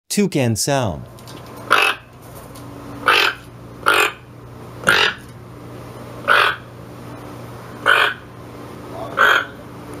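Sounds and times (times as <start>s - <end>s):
toucan harsh calls: 1.7s - 2.1s, 3.0s - 5.3s, 6.2s - 6.7s, 7.8s - 8.3s, 9.0s - 9.6s.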